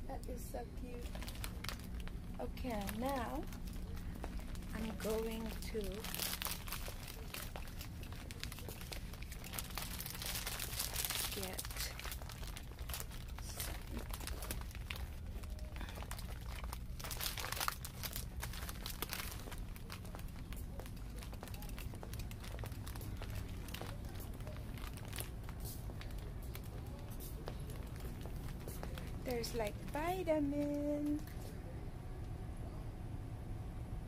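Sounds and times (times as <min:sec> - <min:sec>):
steady low hum: 0:00.0 - 0:34.0
foil and plastic crinkling: 0:00.8 - 0:31.4.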